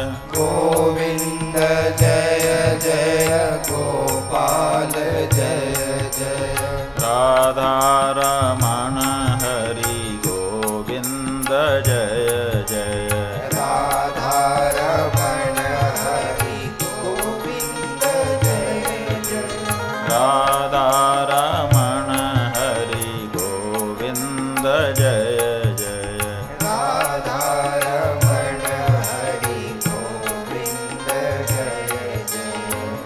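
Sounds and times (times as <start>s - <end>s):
devotional song melody: 0.0s - 33.0s.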